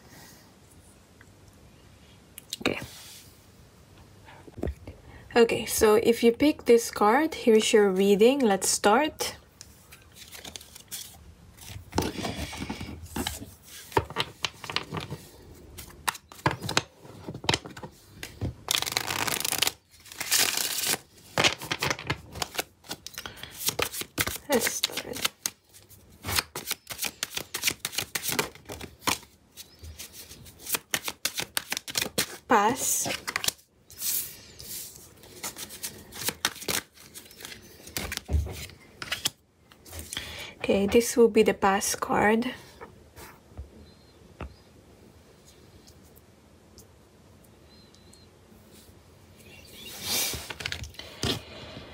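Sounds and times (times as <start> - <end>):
cards shuffling and flicking: 9.6 - 39.4.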